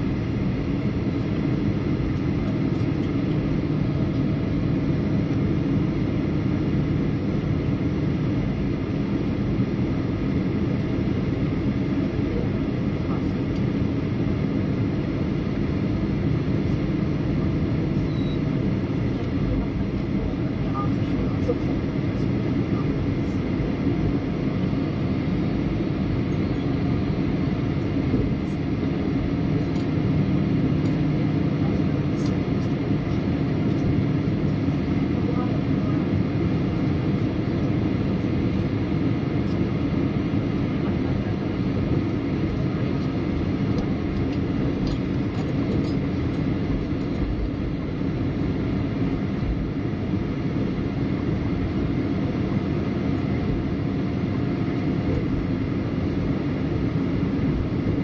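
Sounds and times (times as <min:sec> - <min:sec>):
constant cabin hum: 0:00.0 - 0:58.0
jet engines rumbling: 0:00.0 - 0:58.0.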